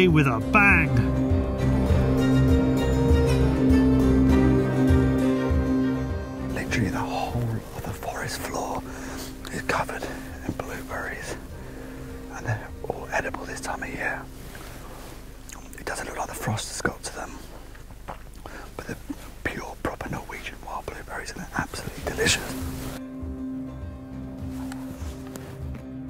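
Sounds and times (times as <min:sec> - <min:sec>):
people whispering: 0:06.5 - 0:11.5, 0:12.3 - 0:14.3, 0:15.5 - 0:17.5, 0:18.7 - 0:22.7.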